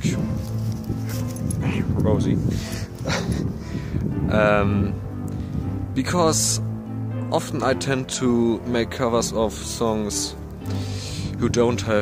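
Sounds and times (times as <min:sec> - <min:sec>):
background music: 0:00.0 - 0:12.0
man laughing: 0:03.0 - 0:03.6.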